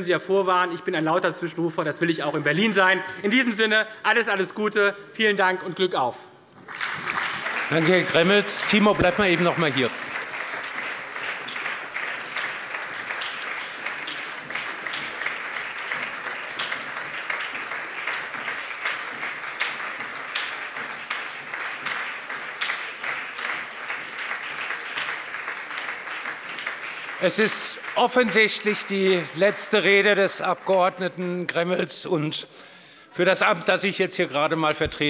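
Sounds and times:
crowd applauding: 0:06.6 - 0:31.0.

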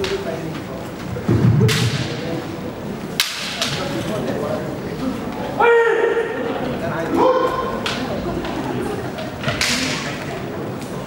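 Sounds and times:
loud deep thud: 0:01.1 - 0:02.6
bamboo swords clacking: 0:03.2 - 0:03.9, 0:09.2 - 0:10.3.

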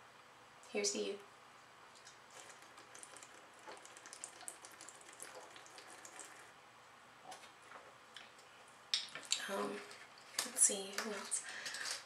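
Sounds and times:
beer fizzing crackle: 0:01.9 - 0:06.6.

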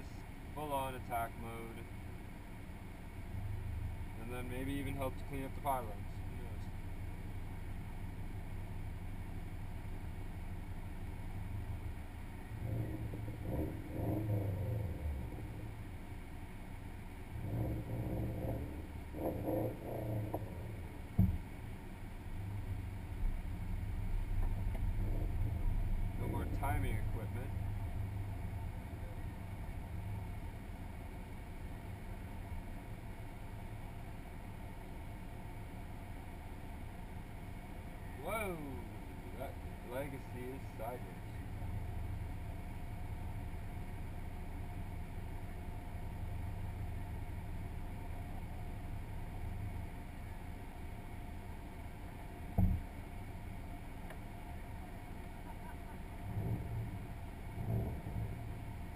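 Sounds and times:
car engine idling: 0:00.0 - 0:58.9.

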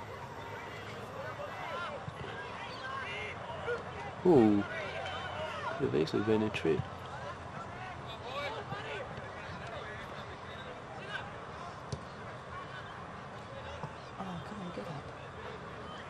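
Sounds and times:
distant shouts and calls: 0:00.0 - 0:05.8.

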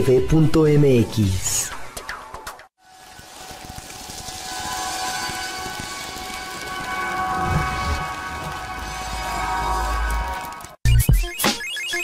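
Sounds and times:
rain-like hiss: 0:02.8 - 0:08.1.

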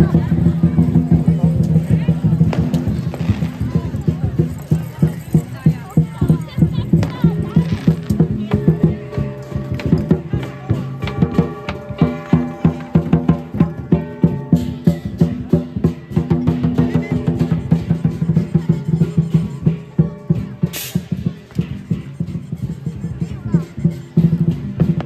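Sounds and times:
drum beating: 0:00.0 - 0:25.0
cymbals crashing: 0:16.0 - 0:22.7.

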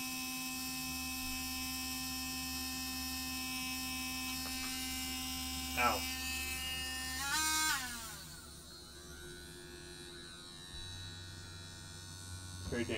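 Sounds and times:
rotary tool motor whining: 0:00.0 - 0:12.9.

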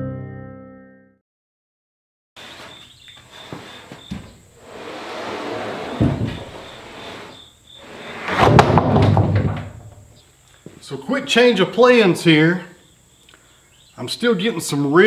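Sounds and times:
board scraping across log: 0:02.4 - 0:09.0.

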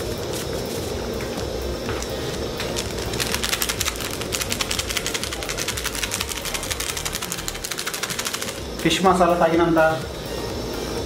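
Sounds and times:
steady cooking hiss: 0:00.0 - 0:11.0.

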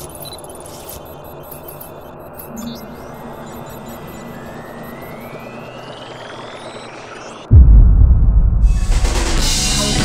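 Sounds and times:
rising whine: 0:02.1 - 0:09.8
airy rumble: 0:07.5 - 0:09.8.

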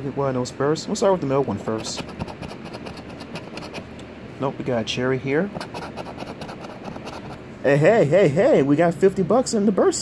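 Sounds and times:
coin scraping lottery ticket: 0:01.7 - 0:03.9, 0:05.6 - 0:07.4.

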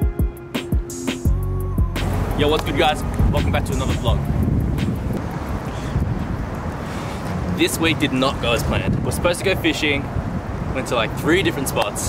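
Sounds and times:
wind buffeting microphone: 0:02.0 - 0:12.0.

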